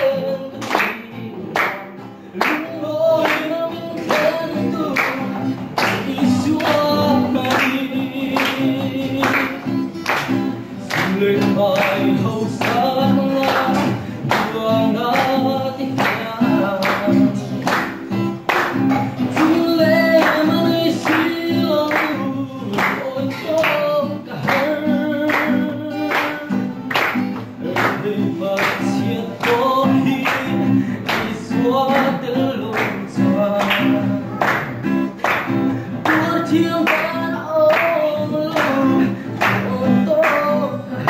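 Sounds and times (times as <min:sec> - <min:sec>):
person singing: 0:00.0 - 0:41.0
strummed acoustic guitar: 0:00.0 - 0:41.0.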